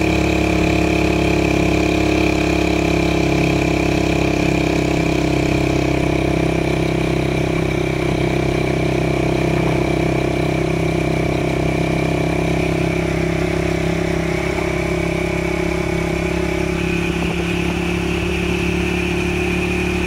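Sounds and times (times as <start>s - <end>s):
road noise: 0.0s - 20.0s
vehicle engine droning: 0.0s - 20.0s.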